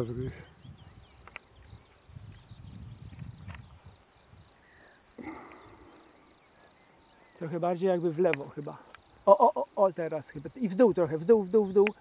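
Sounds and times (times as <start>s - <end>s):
insect chirring: 0.0s - 12.0s.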